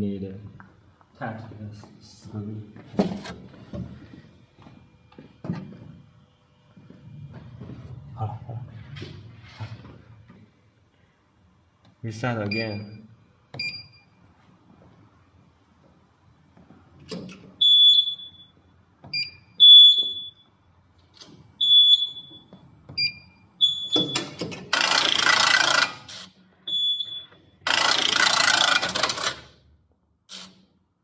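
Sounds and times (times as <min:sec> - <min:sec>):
machine buzzer beeping: 0:17.6 - 0:18.6, 0:19.2 - 0:20.5, 0:21.6 - 0:26.1, 0:26.7 - 0:29.3.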